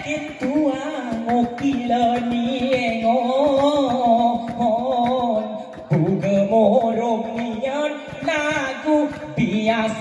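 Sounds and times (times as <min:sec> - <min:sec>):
man singing ornamented melody: 0:00.0 - 0:10.0
rhythmic percussive strokes: 0:00.0 - 0:10.0.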